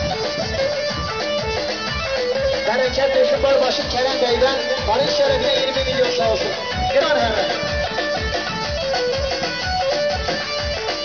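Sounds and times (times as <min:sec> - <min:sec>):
electronic keyboard dance music: 0:00.0 - 0:11.0.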